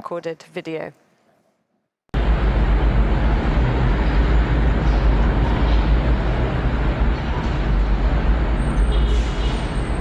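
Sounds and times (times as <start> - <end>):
loud background noise with deep rumble: 2.2 - 10.0.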